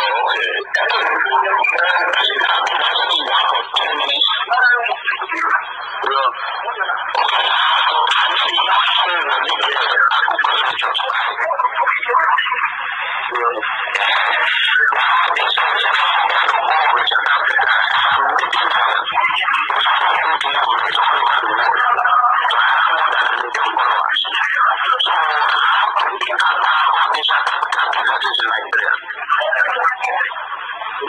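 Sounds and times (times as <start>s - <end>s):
voices over telephone: 0.0s - 31.0s.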